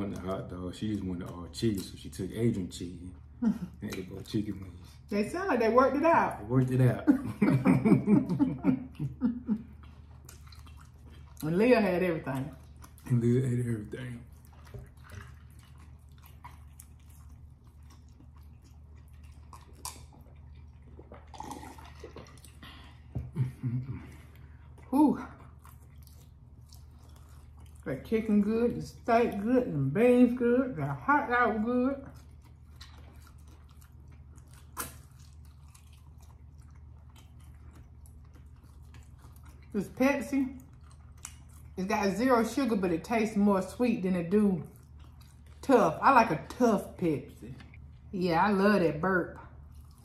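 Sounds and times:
people chewing: 0.0s - 5.1s, 5.9s - 48.1s, 49.4s - 50.0s
low room hum: 0.0s - 50.0s
sips and gulps of drink: 20.0s - 23.4s.

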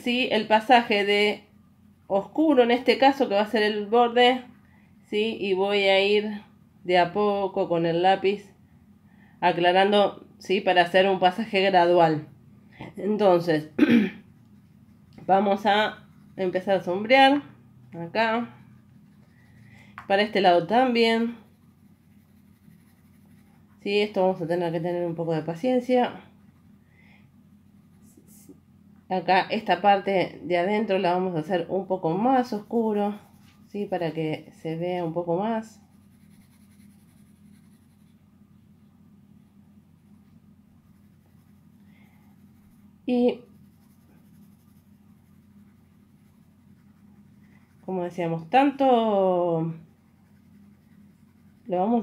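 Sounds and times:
pencil scratching on paper: 14.2s - 17.4s, 18.2s - 26.7s, 32.2s - 35.2s, 35.8s - 38.2s, 40.0s - 52.0s.

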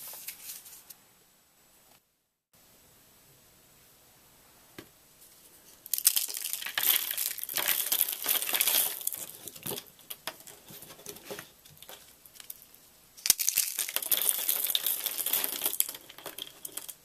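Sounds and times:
soap curls crackling and snapping: 5.8s - 17.0s.

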